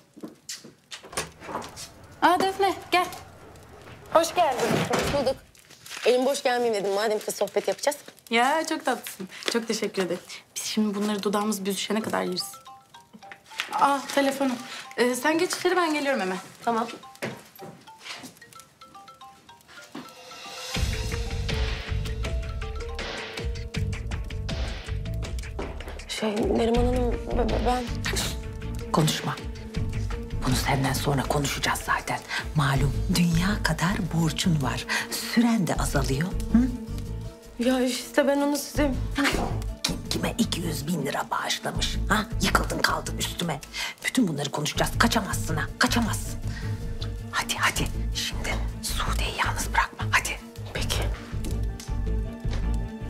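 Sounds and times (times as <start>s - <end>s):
percussive hits: 20.7s - 28.0s.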